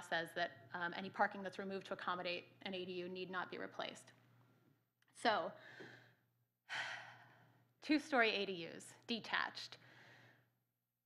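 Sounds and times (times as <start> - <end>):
woman speaking: 0.0 - 4.1, 5.2 - 5.6, 7.8 - 9.8.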